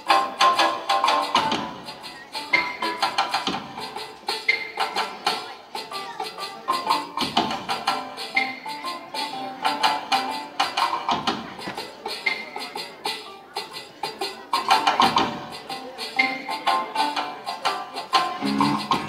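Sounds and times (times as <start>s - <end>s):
dance music over loudspeakers: 18.3s - 19.0s.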